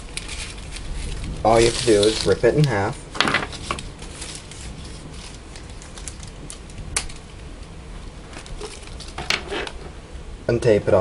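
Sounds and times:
wrapper tearing: 0.0 - 7.5, 8.3 - 9.8
wrapper crinkling: 0.0 - 10.0.

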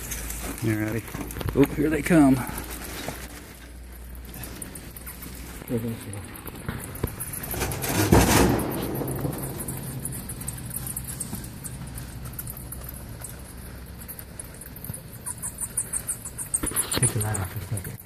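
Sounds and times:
low steady hum: 0.0 - 18.0
bats squeaking and chittering: 8.5 - 18.0.

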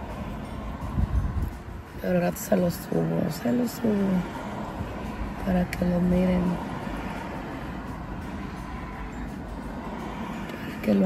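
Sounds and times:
car interior rumble and hiss: 0.0 - 11.0.

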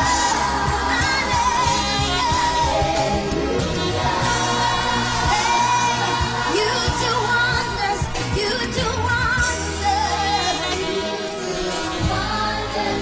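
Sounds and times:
amplified instrumental backing: 0.0 - 13.0
women singing gospel song: 0.0 - 13.0.

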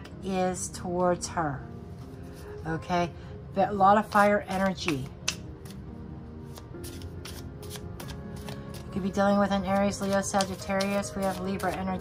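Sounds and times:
soft background music: 0.0 - 12.0
cards being shuffled: 4.0 - 5.8, 6.5 - 12.0.

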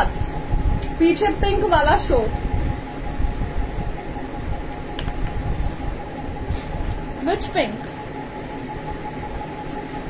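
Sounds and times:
faint fan hum: 0.0 - 10.0
room background rumble: 0.0 - 10.0.

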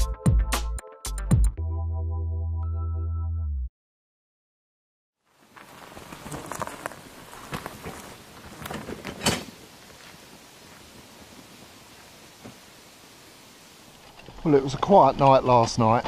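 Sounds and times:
footsteps on leafy forest path: 5.2 - 12.6
soft outdoor hiss: 5.2 - 16.0
barrow wheel crunching over leaves: 5.3 - 12.1, 14.0 - 16.0.

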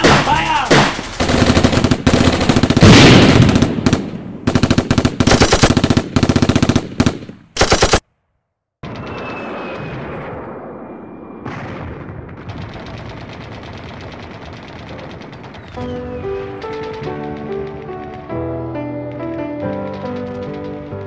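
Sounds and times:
automatic gunfire bursts: 0.0 - 8.0, 12.6 - 16.0.

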